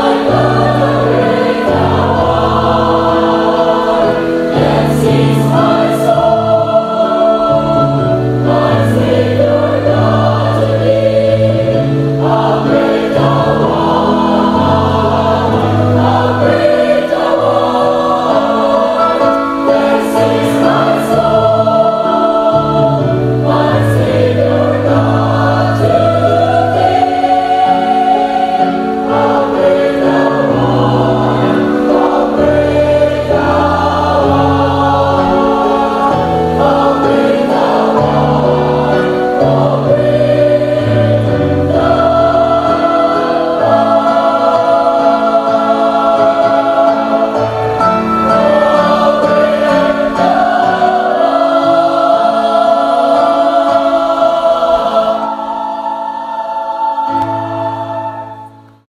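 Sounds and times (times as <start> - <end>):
choir singing a hymn: 0.0 - 58.8.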